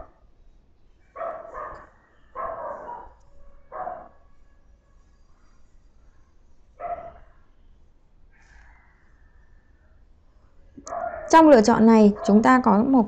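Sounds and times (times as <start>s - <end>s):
faint dog barking: 1.1s - 7.6s, 8.3s - 12.9s.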